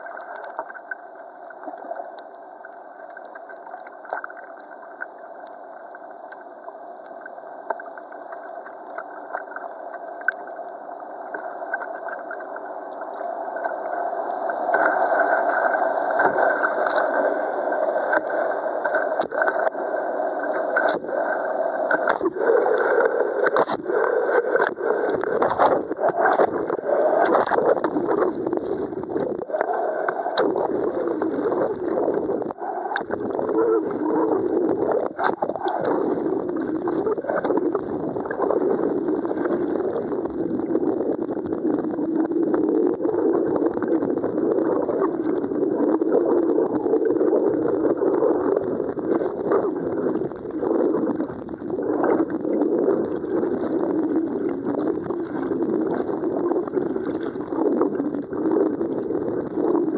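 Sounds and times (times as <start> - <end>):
muffled underwater river rushing: 0.0 - 59.9.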